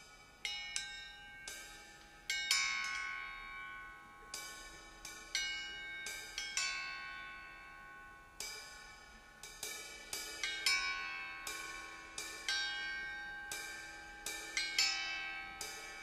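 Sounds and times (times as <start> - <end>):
metal chimes and cymbals ringing: 0.0 - 16.0.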